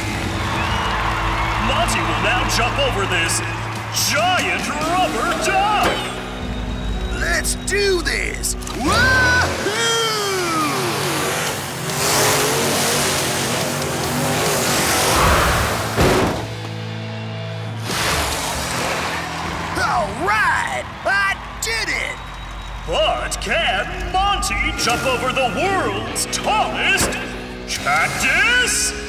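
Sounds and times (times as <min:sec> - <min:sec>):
voices shouting: 0:00.0 - 0:11.8, 0:19.2 - 0:29.0
cartoon truck engine revving: 0:00.0 - 0:16.7, 0:17.6 - 0:20.9, 0:22.8 - 0:29.0
background music: 0:00.0 - 0:29.0
crowd cheering: 0:00.0 - 0:29.0
sharp thud: 0:15.9 - 0:16.6.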